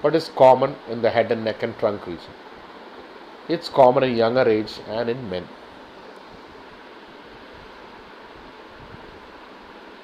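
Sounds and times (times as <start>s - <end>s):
room tone hiss: 0.0s - 10.0s.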